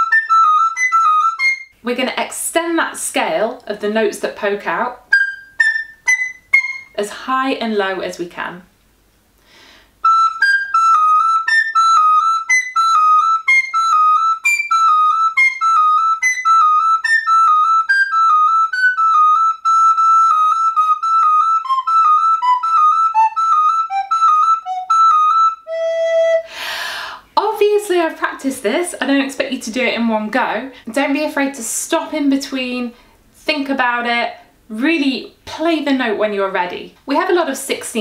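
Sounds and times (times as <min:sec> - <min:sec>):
recorder playing notes: 0:00.0 - 0:01.8, 0:05.0 - 0:07.0, 0:10.0 - 0:26.6
woman speaking: 0:01.8 - 0:05.0, 0:07.0 - 0:08.7, 0:27.4 - 0:38.0.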